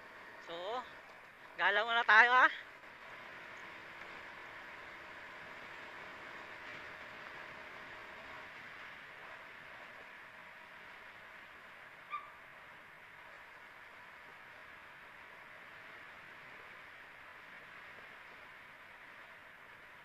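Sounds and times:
motorcycle engine riding: 0:00.0 - 0:20.0.

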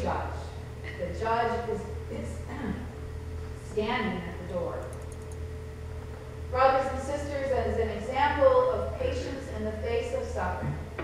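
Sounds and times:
woman reading aloud: 0:00.0 - 0:02.9, 0:03.7 - 0:04.9, 0:06.6 - 0:10.7
low electrical hum: 0:00.0 - 0:11.0
faint rapid clicks: 0:04.8 - 0:05.4.

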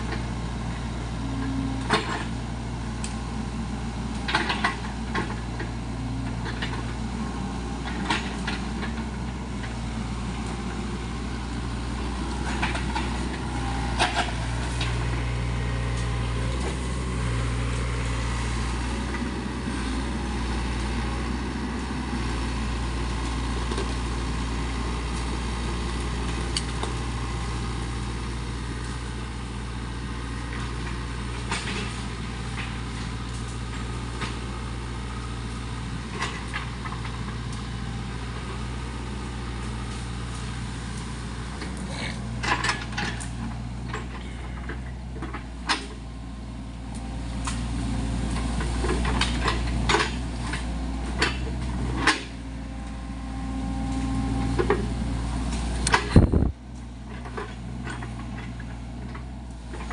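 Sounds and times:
excavator diesel engine running: 0:00.0 - 0:59.9.

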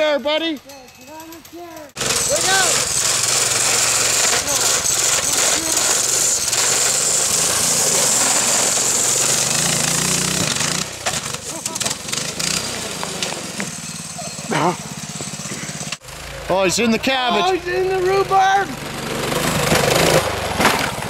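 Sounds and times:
small gasoline engine at full throttle: 0:01.1 - 0:21.0.

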